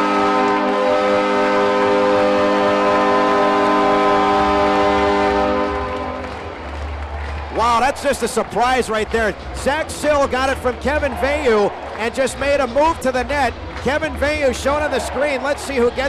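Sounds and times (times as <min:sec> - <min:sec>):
arena goal horn blast: 0:00.0 - 0:06.5
crowd cheering: 0:04.4 - 0:16.0
commentator talking: 0:07.6 - 0:16.0.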